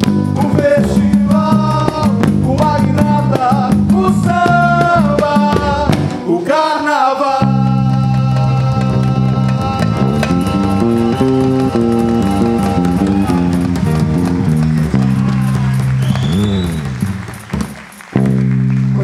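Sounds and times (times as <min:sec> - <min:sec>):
bass guitar low notes: 0:00.0 - 0:06.4, 0:07.4 - 0:19.0
live samba band playing: 0:00.0 - 0:06.4, 0:07.4 - 0:19.0.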